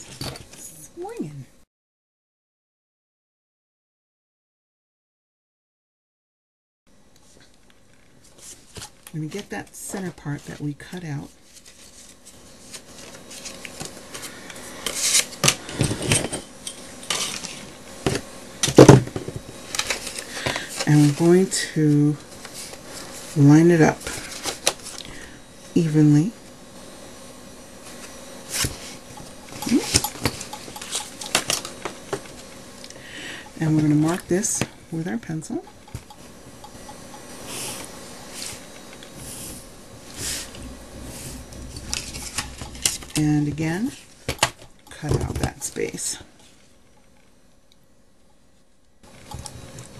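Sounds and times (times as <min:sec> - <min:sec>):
paper rustling and clicking: 0:19.7 - 0:20.9.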